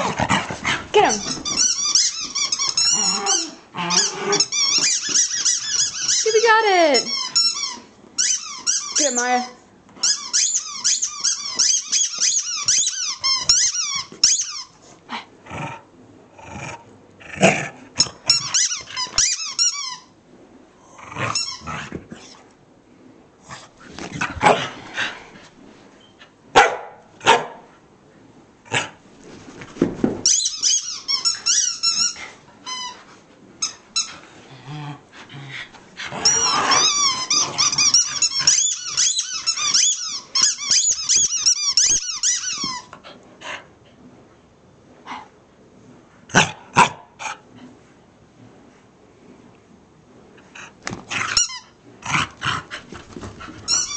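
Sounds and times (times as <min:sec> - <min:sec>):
squeaky toy squeaking: 0:01.0 - 0:14.8, 0:18.0 - 0:20.1, 0:30.2 - 0:33.0, 0:36.2 - 0:42.9, 0:51.3 - 0:51.8, 0:53.7 - 0:53.9.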